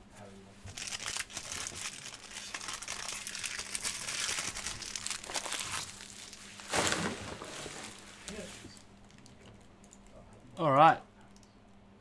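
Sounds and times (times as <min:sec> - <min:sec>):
plastic wrapper crinkling and tearing: 0:00.7 - 0:10.2.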